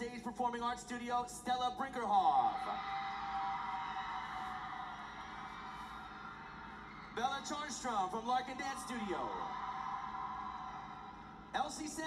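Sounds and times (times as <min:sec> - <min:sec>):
audience applause and cheering: 0:02.6 - 0:07.7, 0:08.4 - 0:11.7.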